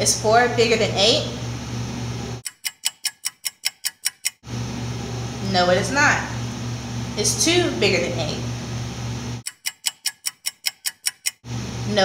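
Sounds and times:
clock ticking quickly: 2.4 - 4.4, 9.4 - 11.4.

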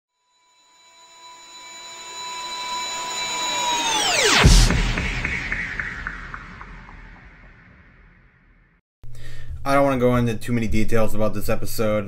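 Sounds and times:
high whine: 0.4 - 8.8
whoosh: 1.6 - 8.8.

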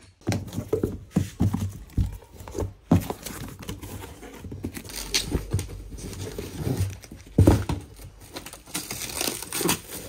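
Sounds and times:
cardboard rustling: 0.2 - 10.0.

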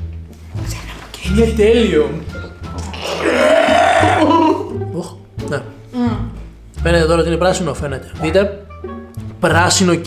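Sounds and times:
background music: 0.0 - 10.0
long loud burp: 2.8 - 4.7.

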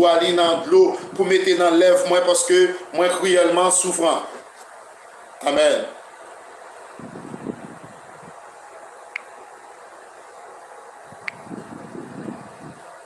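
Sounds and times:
soft rustling: 4.2 - 4.8
short sharp clicks: 11.2 - 11.5.

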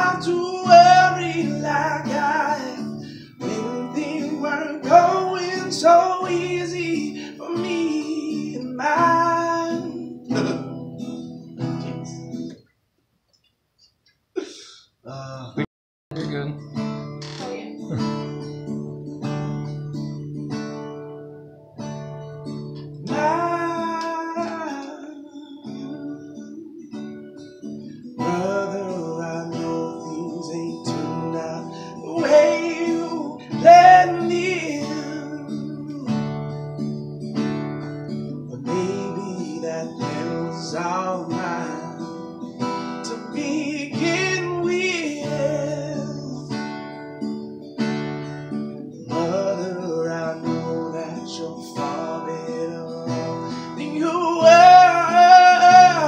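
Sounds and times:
man singing: 0.0 - 12.2, 23.0 - 27.3, 28.2 - 36.6, 38.3 - 47.1, 49.0 - 56.0
acoustic guitar picking: 0.0 - 12.7, 16.1 - 56.0.

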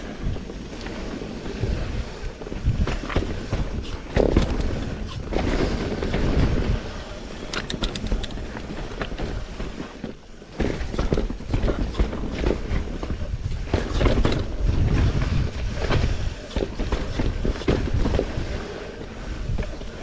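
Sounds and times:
bike tyres rumbling over roots: 0.0 - 20.0
wind rumble on microphone: 0.0 - 20.0
bike clattering over bumps: 2.6 - 6.9.

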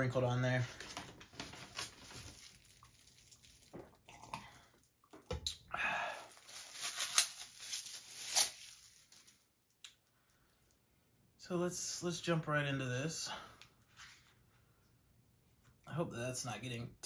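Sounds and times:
plastic wrapper crinkling and tearing: 0.8 - 4.1, 6.2 - 9.9.

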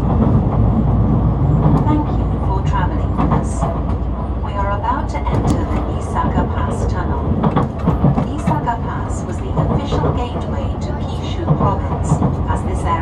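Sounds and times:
train interior rumble: 0.0 - 13.0.

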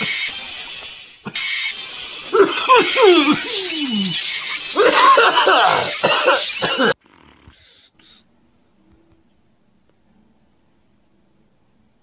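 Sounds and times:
man laughing: 2.2 - 6.9.

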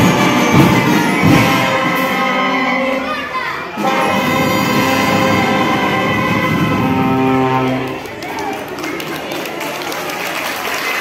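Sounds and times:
brass band playing chords: 0.0 - 8.3.

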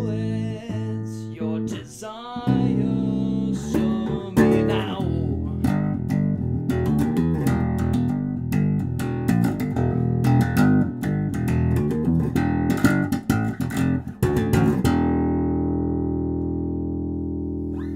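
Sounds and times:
electric bass guitar riff: 0.0 - 17.9.

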